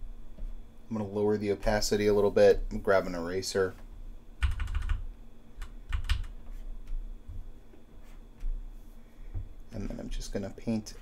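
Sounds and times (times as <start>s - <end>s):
computer keyboard clicks: 4.4s - 5.0s, 5.6s - 6.4s.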